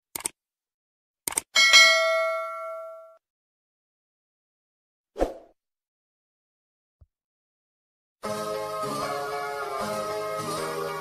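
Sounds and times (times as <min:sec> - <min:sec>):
sharp clicks: 0:00.1 - 0:00.4, 0:01.2 - 0:01.5
bright bell ding: 0:01.6 - 0:03.2.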